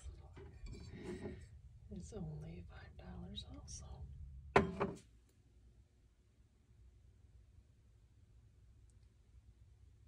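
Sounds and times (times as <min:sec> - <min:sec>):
person speaking softly: 0:00.0 - 0:04.2
steady low hum: 0:00.0 - 0:10.0.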